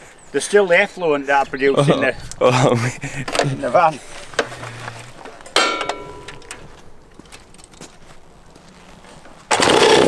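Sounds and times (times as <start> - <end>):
clicks and handling noises: 3.2 - 9.6
metallic clank: 5.2 - 7.8.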